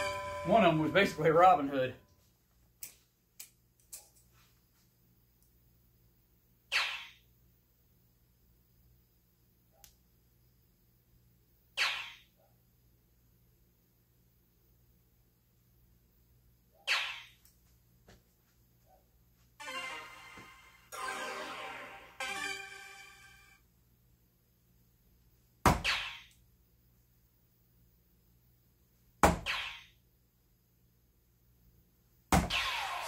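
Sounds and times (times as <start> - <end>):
darts hitting electronic dartboard: 6.7 - 7.2, 16.9 - 17.4, 25.6 - 26.3, 29.2 - 29.9, 32.3 - 33.0.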